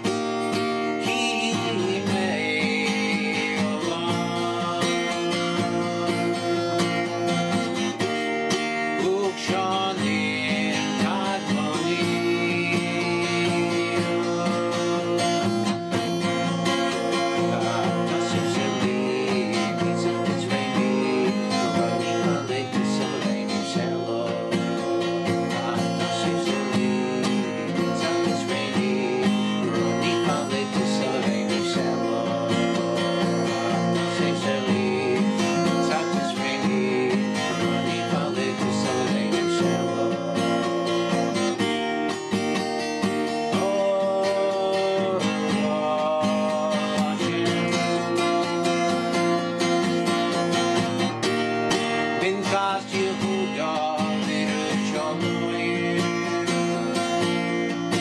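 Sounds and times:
acoustic guitar strumming chords: 0:00.0 - 0:58.0.

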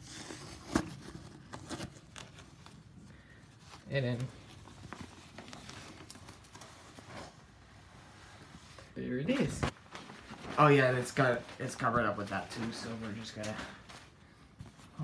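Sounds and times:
paper wrap rustling: 0:00.0 - 0:07.4.

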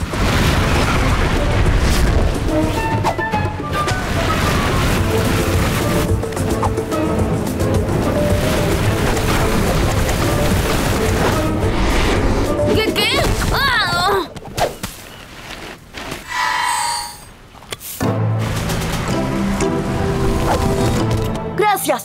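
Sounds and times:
cartoon background music: 0:00.8 - 0:14.3.

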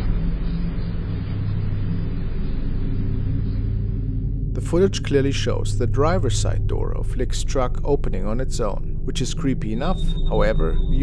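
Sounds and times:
low rumble with hum: 0:00.0 - 0:11.0.

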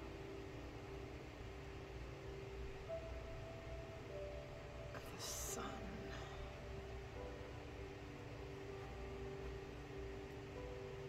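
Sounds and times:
faint soft background music: 0:00.0 - 0:11.0
low hum: 0:00.0 - 0:11.0
steady hiss: 0:00.0 - 0:11.0.

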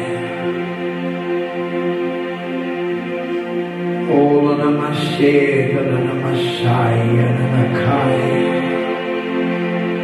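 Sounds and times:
ambient keyboard chords: 0:00.0 - 0:10.0
man chanting: 0:04.0 - 0:08.9.

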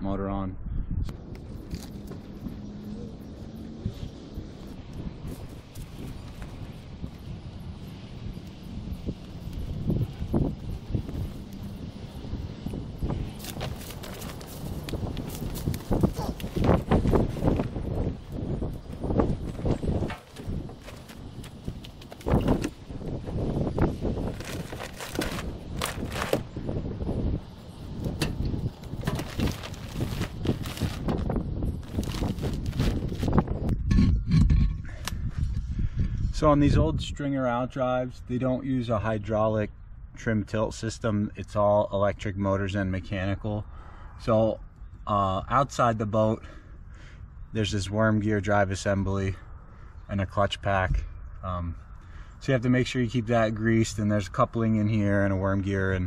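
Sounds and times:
plastic tarp rustling: 0:24.2 - 0:26.5, 0:28.8 - 0:33.4.

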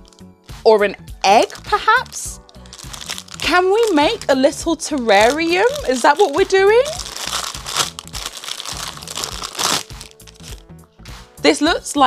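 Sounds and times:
plastic bag crinkling: 0:01.4 - 0:10.7.

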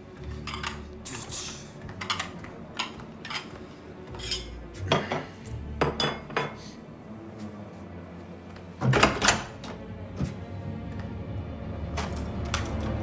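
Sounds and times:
dishes and cutlery clinking: 0:00.2 - 0:00.9, 0:01.8 - 0:06.6.

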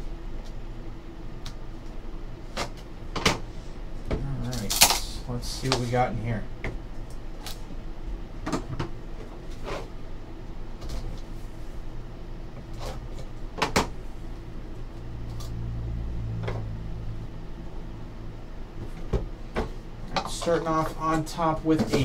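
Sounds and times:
low rumble: 0:14.0 - 0:20.0.

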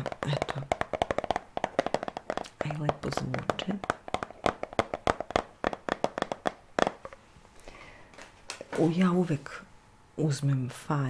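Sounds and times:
clicks and taps on plastic bottle: 0:00.0 - 0:07.2.

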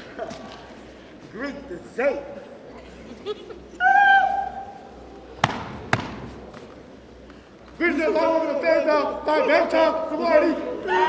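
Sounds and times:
sharp stomps echoing: 0:05.4 - 0:06.5
person shouting a long call: 0:10.7 - 0:11.0.

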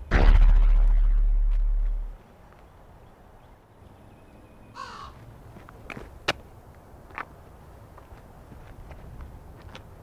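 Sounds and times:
crow cawing: 0:04.8 - 0:05.2.

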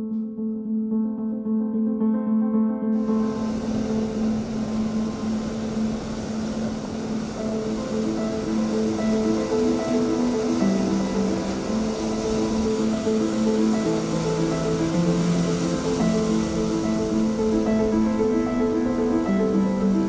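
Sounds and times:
slow held-note music: 0:00.0 - 0:20.0
storm surf breaking on rocks: 0:03.0 - 0:20.0.

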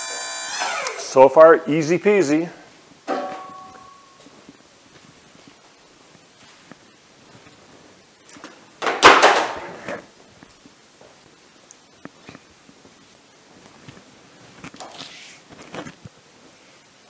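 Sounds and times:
sharp metal knock ringing: 0:03.1 - 0:04.1.

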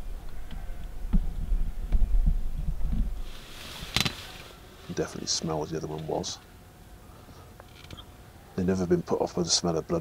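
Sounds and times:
low rumble: 0:00.0 - 0:04.4.

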